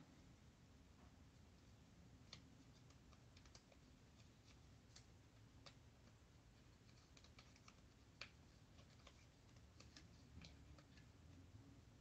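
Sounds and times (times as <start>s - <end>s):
light clicks from handling decals: 2.2s - 11.2s.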